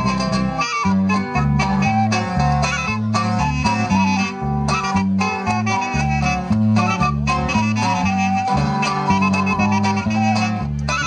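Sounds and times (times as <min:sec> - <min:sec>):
bass line: 0:00.0 - 0:11.0
live band playing dance music: 0:00.0 - 0:11.0
reedy lead melody: 0:00.0 - 0:11.0.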